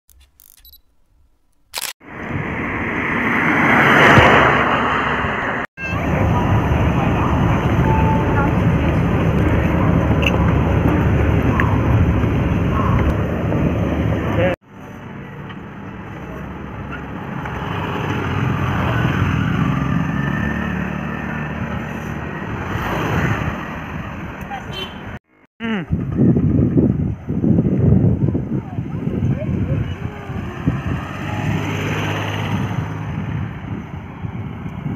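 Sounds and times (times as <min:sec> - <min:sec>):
outdoor background noise: 0:00.1 - 0:34.9.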